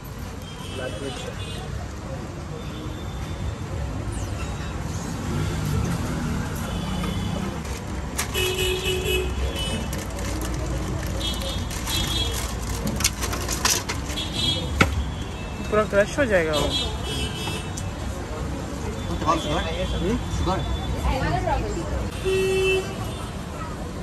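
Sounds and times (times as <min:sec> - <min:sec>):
traffic rumble: 0:00.0 - 0:24.0
handling clicks and clatters: 0:07.4 - 0:08.6, 0:09.7 - 0:15.0.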